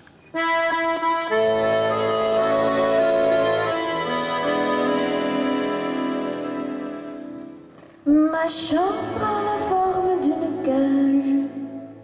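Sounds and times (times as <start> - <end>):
accordion chords: 0.4 - 7.8.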